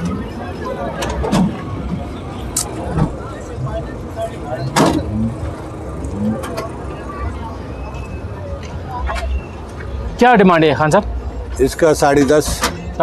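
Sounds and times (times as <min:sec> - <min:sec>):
distant voices: 0:00.0 - 0:13.0
low rumble of vehicles: 0:00.0 - 0:13.0.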